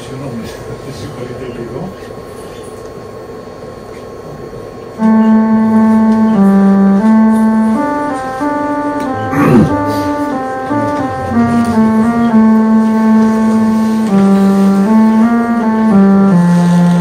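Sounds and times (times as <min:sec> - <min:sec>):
electronic instrument melody: 0:05.0 - 0:17.0.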